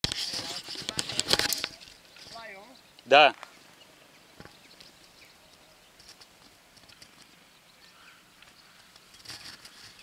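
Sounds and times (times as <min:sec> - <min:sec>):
sharp clicks and rattles: 0:00.0 - 0:02.5.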